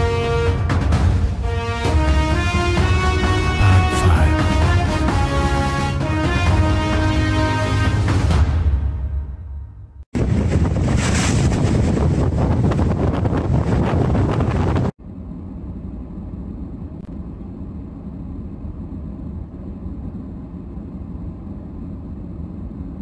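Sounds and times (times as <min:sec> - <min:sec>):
wind buffeting microphone: 0:10.1 - 0:15.0.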